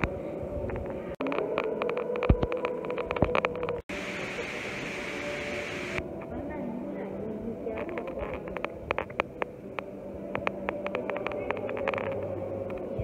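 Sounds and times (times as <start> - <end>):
people moving about: 0.0 - 4.5, 6.0 - 13.0
steady hiss: 0.0 - 13.0.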